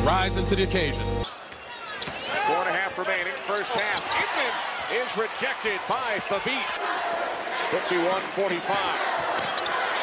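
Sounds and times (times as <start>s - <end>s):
background music: 0.0s - 1.2s
commentator's voice: 0.0s - 1.2s, 7.7s - 9.1s
basketball court noise: 1.2s - 10.0s.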